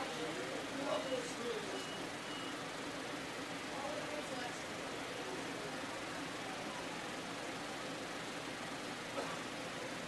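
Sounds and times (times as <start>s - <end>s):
faint high beeps: 0.0s - 2.7s
murmur of distant voices: 0.0s - 10.0s.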